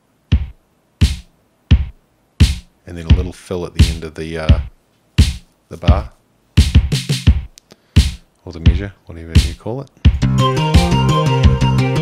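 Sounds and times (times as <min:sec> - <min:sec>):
electronic kick and snare beat: 0:00.2 - 0:11.8.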